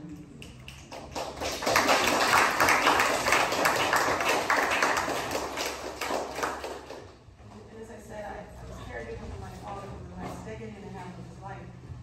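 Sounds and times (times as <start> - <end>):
audience applauding: 0.6 - 7.1.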